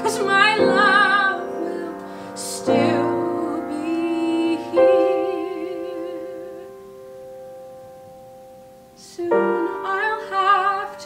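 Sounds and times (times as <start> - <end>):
woman singing with vibrato: 0.0 - 7.0, 9.0 - 11.0.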